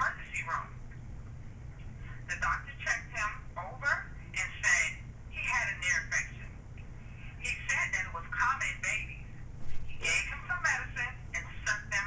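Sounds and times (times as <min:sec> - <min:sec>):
woman speaking: 0:00.0 - 0:00.8, 0:02.1 - 0:06.6, 0:07.4 - 0:12.0
low steady hum: 0:00.0 - 0:12.0.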